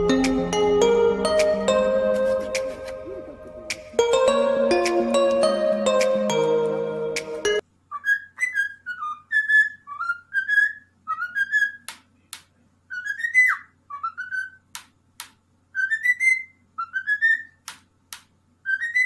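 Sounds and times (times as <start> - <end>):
cockatiel whistling chirped notes: 7.9 - 11.9, 12.9 - 14.6, 15.8 - 17.6, 18.6 - 19.0.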